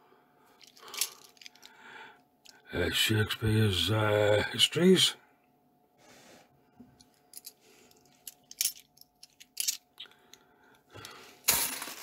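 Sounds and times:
coins clinking: 0:08.2 - 0:09.8, 0:11.5 - 0:12.0.

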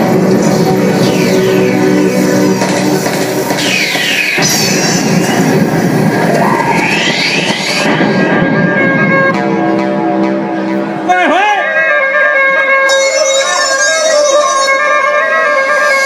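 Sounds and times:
whooshing sweeps: 0:00.3 - 0:09.8
loud amplified dhol music: 0:00.8 - 0:16.0.

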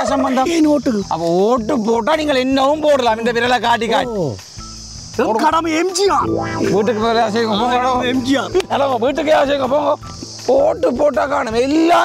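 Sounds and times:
steady high hiss: 0:04.3 - 0:11.3
low hum: 0:06.2 - 0:10.2.

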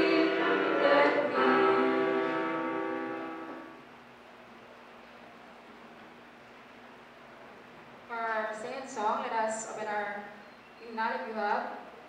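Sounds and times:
voices singing a hymn: 0:00.0 - 0:03.7.

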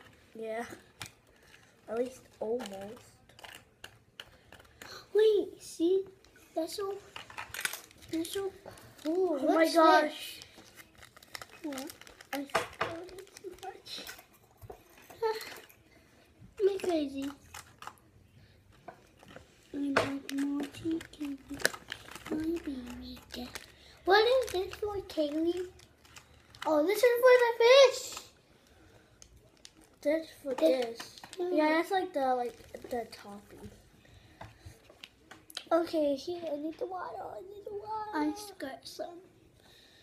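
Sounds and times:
packaging crinkling: 0:00.0 - 0:05.0, 0:06.8 - 0:15.8, 0:16.6 - 0:27.4, 0:28.1 - 0:33.6.

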